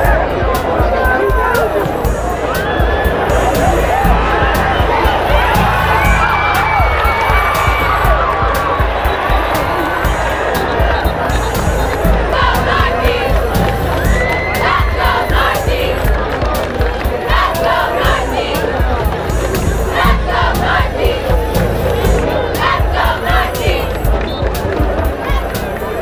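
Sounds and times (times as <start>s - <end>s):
crowd chanting: 0.0s - 26.0s
crowd cheering and shouting: 0.0s - 26.0s.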